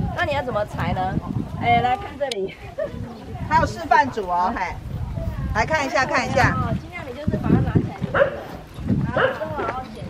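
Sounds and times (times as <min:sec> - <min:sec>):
crowd chatter: 0:00.0 - 0:10.0
dog barking: 0:08.1 - 0:08.5, 0:09.1 - 0:09.5.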